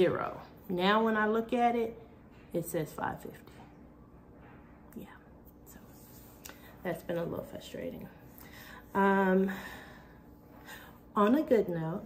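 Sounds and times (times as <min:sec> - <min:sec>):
woman speaking softly: 0:04.9 - 0:08.2, 0:08.9 - 0:09.6, 0:11.2 - 0:12.0.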